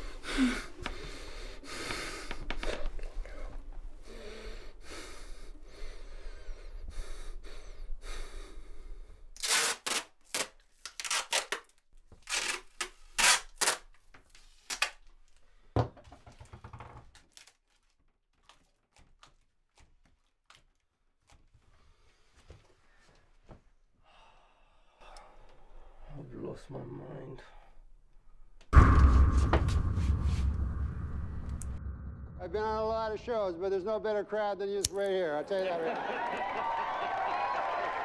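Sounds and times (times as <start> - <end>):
person sighing: 0.0 - 3.5
person breathing heavily: 0.0 - 9.4, 24.0 - 26.0.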